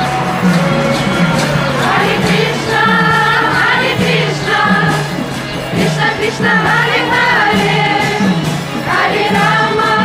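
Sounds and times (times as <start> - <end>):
group singing a chant: 0.0 - 10.0.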